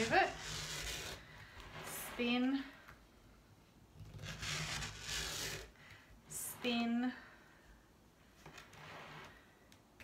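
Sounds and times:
rotary cutter rasping through fabric: 0.0 - 2.4, 4.0 - 5.7.

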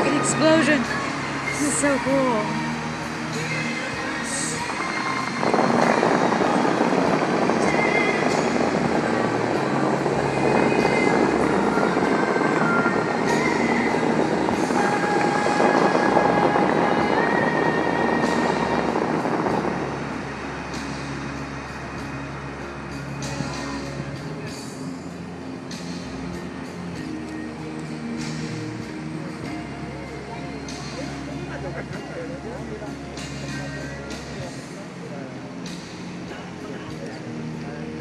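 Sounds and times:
fountain water rushing: 0.0 - 38.0
recorded music: 0.0 - 38.0.

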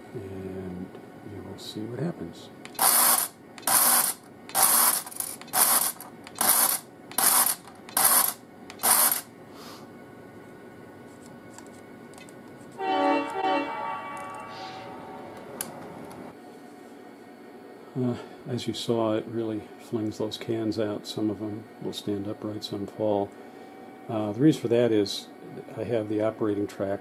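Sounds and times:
horn-like tone: 12.8 - 16.3.

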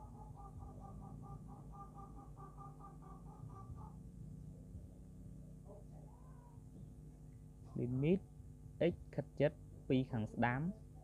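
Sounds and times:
animal calls: 0.0 - 4.1
low steady hum: 0.0 - 11.0.

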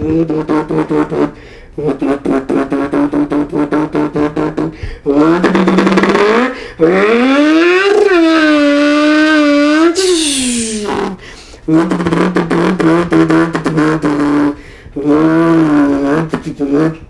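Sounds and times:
man imitating engine with mouth: 0.0 - 17.0.

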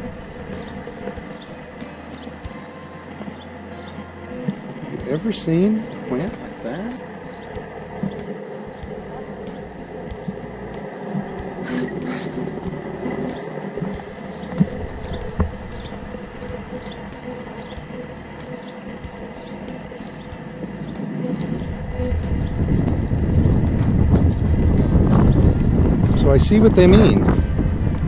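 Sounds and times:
wind rumble on microphone: 0.0 - 2.4, 3.2 - 28.0
footsteps walking: 11.1 - 16.9.

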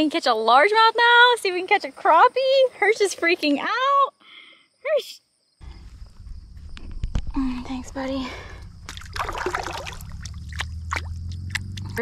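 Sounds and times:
water dripping: 8.6 - 12.0
fish splashing in water: 8.8 - 12.0.

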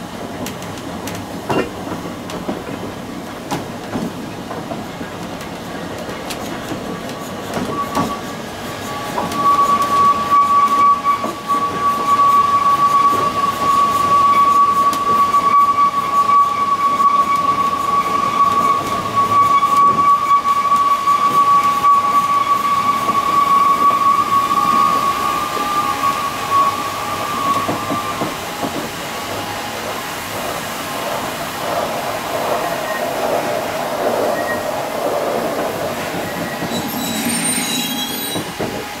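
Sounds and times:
wheels rumbling and clattering on track: 0.0 - 39.0
train wheels squealing: 6.8 - 30.1, 30.9 - 39.0.

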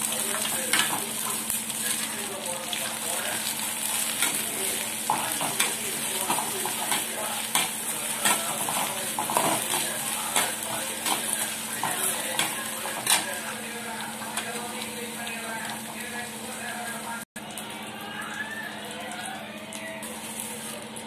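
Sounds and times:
okra sizzling in hot oil: 0.0 - 21.0.

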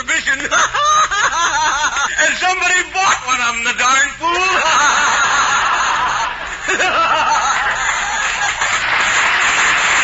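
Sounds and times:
audience laughing: 0.3 - 2.4, 4.4 - 10.0.

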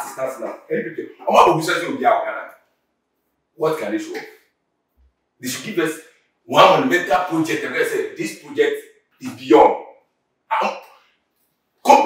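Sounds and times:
speech: 0.0 - 2.5, 3.6 - 4.2, 5.4 - 9.8, 10.5 - 10.9.

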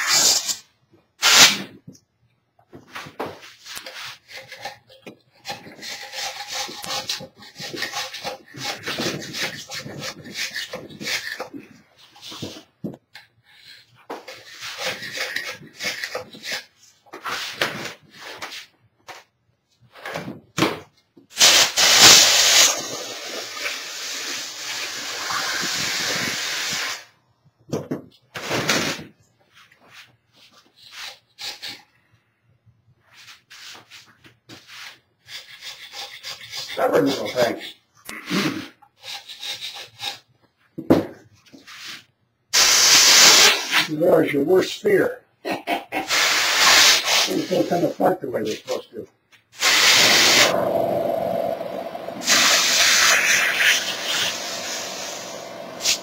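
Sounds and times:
tool scraping plaster: 2.9 - 18.7, 30.4 - 31.9, 33.2 - 40.4, 49.6 - 56.0
loud steady hiss: 21.4 - 27.1, 42.6 - 43.7, 49.6 - 56.0.

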